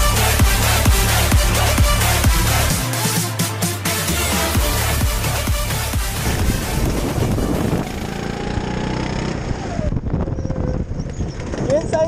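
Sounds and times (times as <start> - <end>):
electronic dance music: 0.0 - 8.2
go-kart engine running: 4.7 - 12.0
wind rushing over microphone: 6.2 - 12.0.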